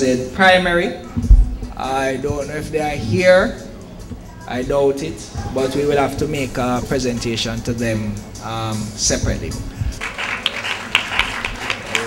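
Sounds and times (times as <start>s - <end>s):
audience applauding: 10.0s - 12.0s.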